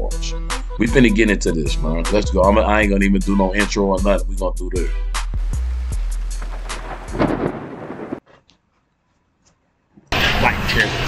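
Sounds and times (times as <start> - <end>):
rain: 5.4 - 8.2
thunder rumbling: 5.4 - 8.2.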